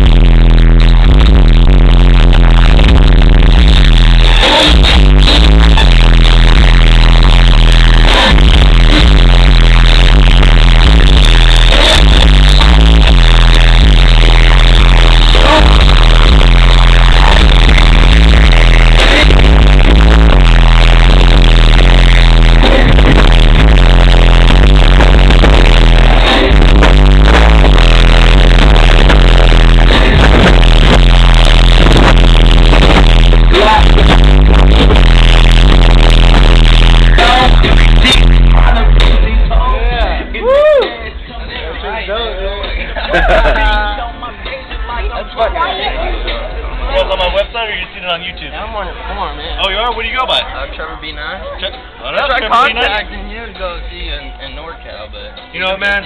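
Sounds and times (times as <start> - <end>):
bass-heavy electronic music: 0.0 - 56.0.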